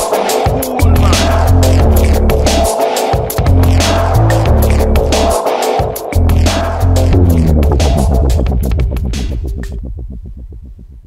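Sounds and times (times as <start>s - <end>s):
dubstep drums: 0.0s - 11.0s
rapidly repeating bass pulse: 0.8s - 2.8s, 3.4s - 5.4s, 6.2s - 11.0s.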